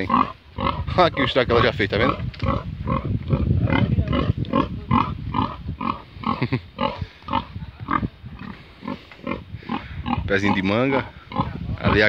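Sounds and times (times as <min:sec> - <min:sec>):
pig grunting: 0:00.0 - 0:12.0.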